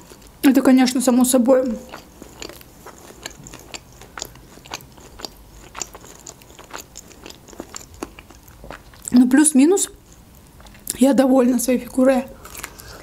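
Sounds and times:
person chewing food: 0:00.0 - 0:00.4, 0:01.6 - 0:09.2, 0:09.9 - 0:11.0, 0:12.4 - 0:13.0.

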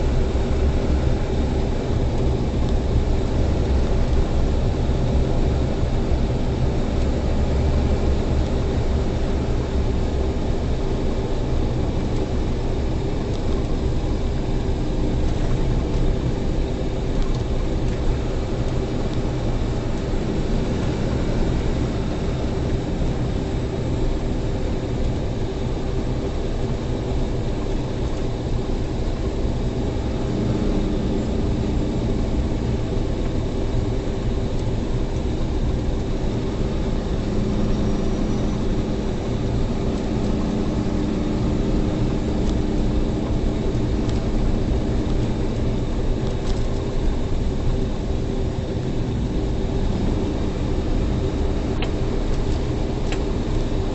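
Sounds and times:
truck engine and tyres droning: 0:00.0 - 0:53.9.

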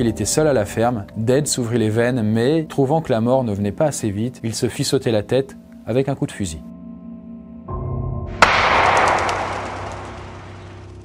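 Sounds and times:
background music: 0:00.0 - 0:11.0
gunshot: 0:08.4 - 0:11.0.

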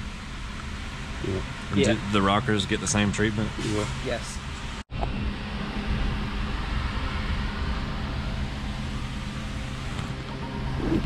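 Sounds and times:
steady low hum with rumble: 0:00.0 - 0:11.0.

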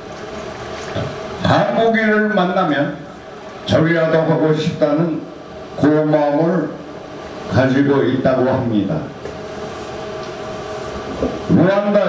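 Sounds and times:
steady background noise: 0:00.0 - 0:12.0.

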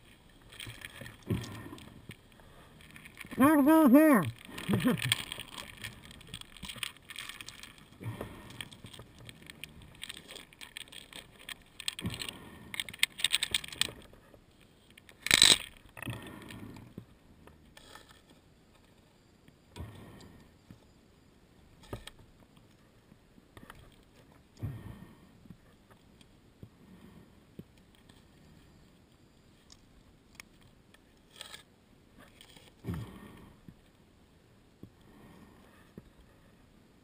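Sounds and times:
metal gear clinking and rattling: 0:04.4 - 0:07.9, 0:08.6 - 0:13.9.

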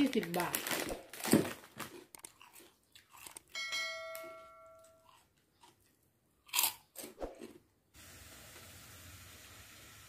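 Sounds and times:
plastic bag crinkling: 0:00.0 - 0:03.5
ringing chime: 0:03.6 - 0:05.1.

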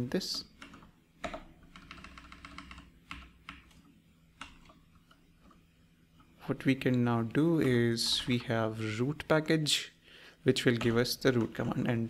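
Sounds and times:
faint typing on keyboard: 0:00.2 - 0:05.7.

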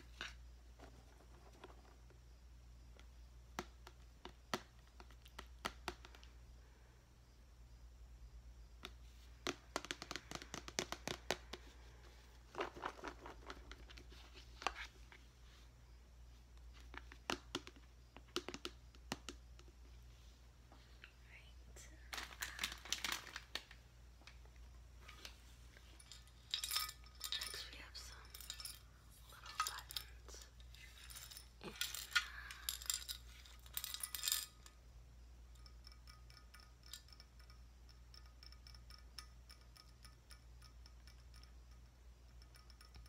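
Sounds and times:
buttons rattling in glass jar: 0:25.8 - 0:34.8.

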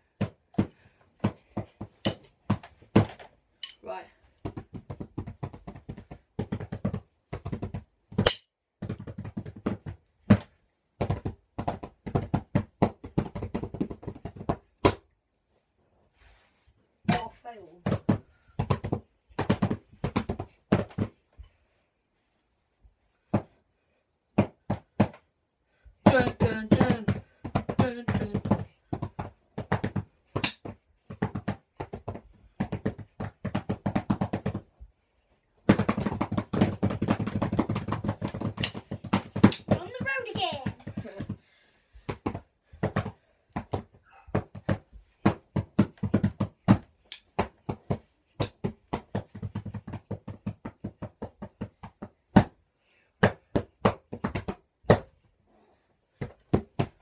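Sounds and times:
drumsticks beating on pillows: 0:00.0 - 0:15.2, 0:17.0 - 0:21.6, 0:24.4 - 0:34.9, 0:35.6 - 0:52.6, 0:53.2 - 0:55.3, 0:56.1 - 0:57.0
person's voice: 0:03.8 - 0:04.2, 0:17.1 - 0:17.9, 0:26.1 - 0:27.2, 0:27.8 - 0:28.5, 0:39.6 - 0:41.3.

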